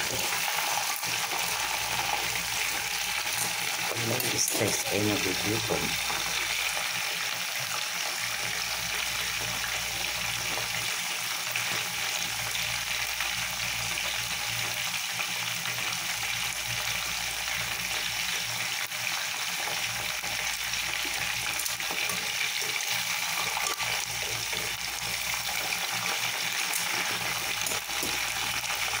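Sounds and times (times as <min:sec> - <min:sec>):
chicken sizzling in hot oil: 0:00.0 - 0:29.0.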